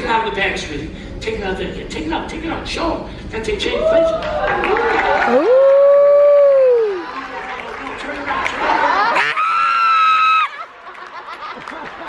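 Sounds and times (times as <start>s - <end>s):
high shout: 3.7s - 7.2s, 9.0s - 10.6s
audience ooh: 4.2s - 7.6s.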